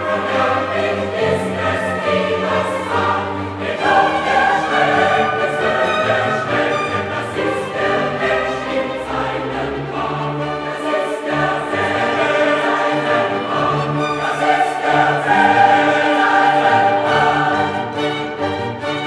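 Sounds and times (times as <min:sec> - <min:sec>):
choir singing with orchestra: 0:00.0 - 0:19.0.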